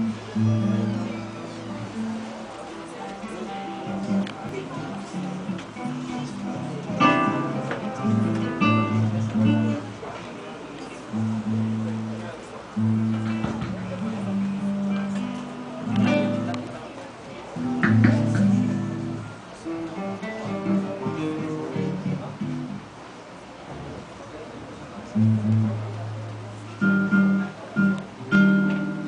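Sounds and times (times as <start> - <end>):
acoustic guitars playing: 0.0 - 10.2, 10.8 - 23.2, 25.0 - 29.0.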